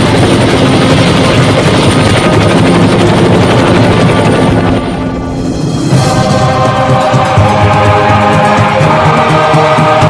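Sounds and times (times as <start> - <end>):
helicopter rotor chop: 0.0 - 10.0.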